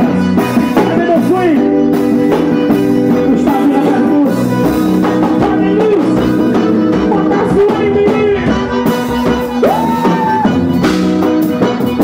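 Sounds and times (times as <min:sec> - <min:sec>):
accordion chords and melody: 0:00.0 - 0:12.0
steady drum beat: 0:00.0 - 0:12.0.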